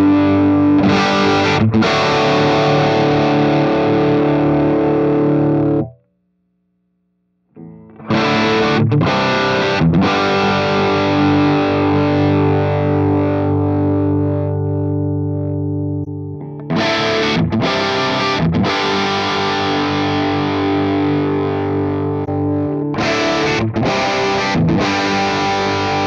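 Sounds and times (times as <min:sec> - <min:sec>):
distorted electric guitar chords: 0:00.0 - 0:06.1, 0:07.5 - 0:26.0.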